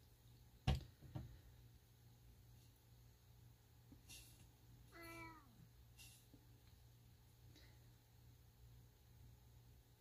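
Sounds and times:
cat meowing faintly: 4.9 - 5.6.

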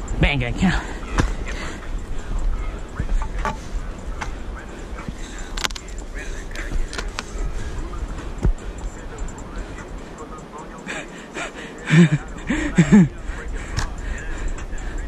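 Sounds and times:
footsteps on dirt trail: 5.0 - 9.0
person laughing: 10.9 - 13.8.

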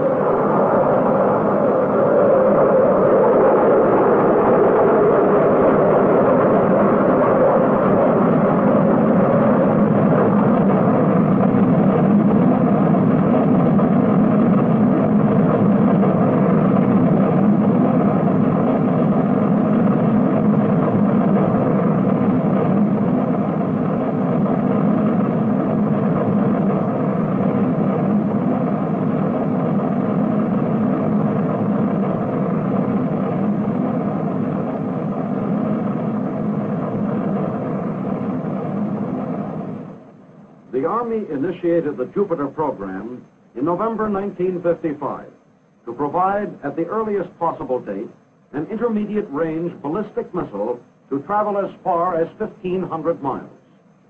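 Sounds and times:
rocket engine roaring: 0.0 - 53.6.

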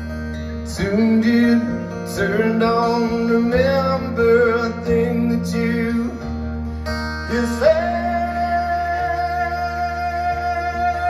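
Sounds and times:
acoustic guitar: 0.0 - 11.0
man singing: 0.6 - 6.5, 7.1 - 11.0.

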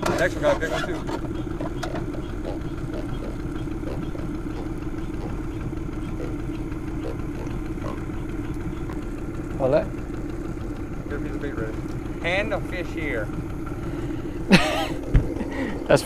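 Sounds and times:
boat motor idling: 0.0 - 16.0.

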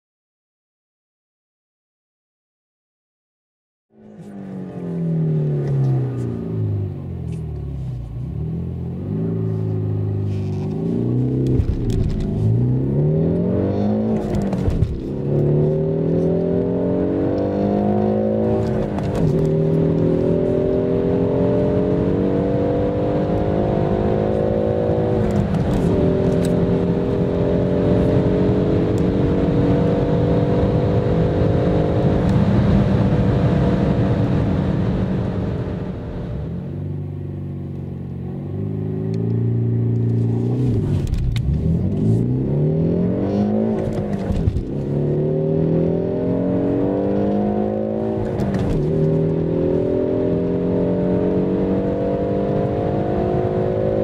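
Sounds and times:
car engine accelerating: 3.9 - 54.0.

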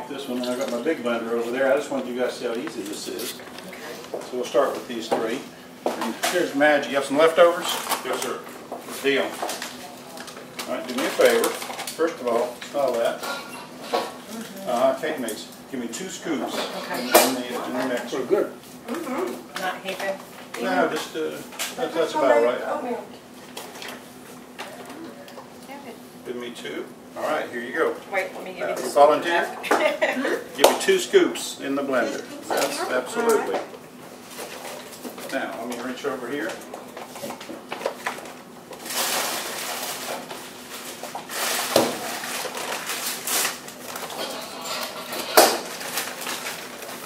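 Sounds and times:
plastic bag rustling: 7.4 - 13.2, 38.0 - 47.0.

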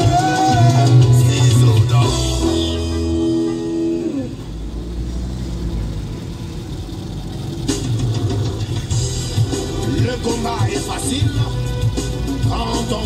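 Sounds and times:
car engine rumble inside cabin: 0.0 - 13.0
road noise: 0.0 - 13.0.

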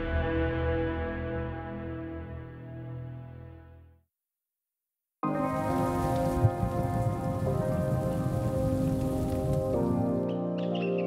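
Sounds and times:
rain sound effect: 5.2 - 10.3.

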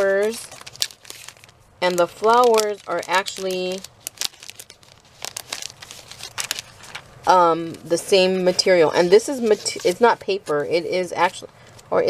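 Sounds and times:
paper flowers rustling: 0.0 - 12.0.

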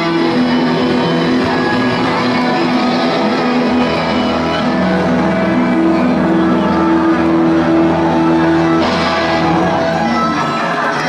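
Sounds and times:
crowd noise: 0.0 - 11.0
many guitars holding a chord: 0.0 - 11.0.

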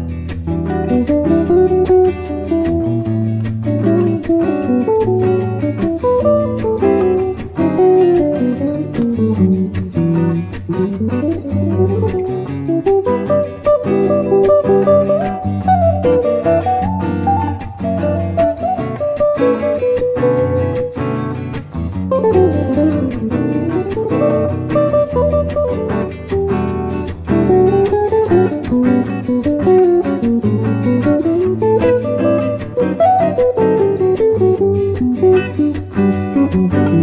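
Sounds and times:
acoustic guitar music: 0.0 - 37.0.

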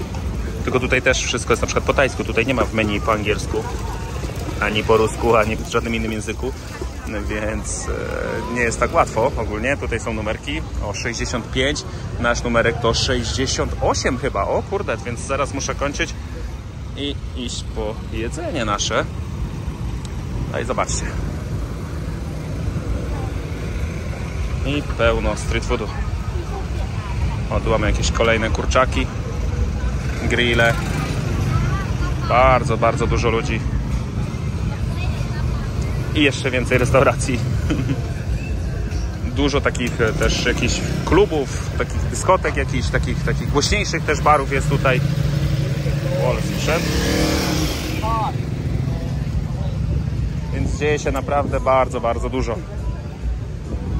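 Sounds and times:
scooters moving: 0.0 - 12.2
crowd chatter: 0.0 - 53.9
traffic and scooters rumbling: 0.0 - 53.9.

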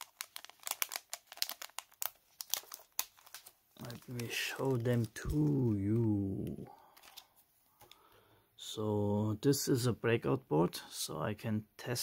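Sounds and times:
plastic bag crinkling: 0.0 - 7.3.

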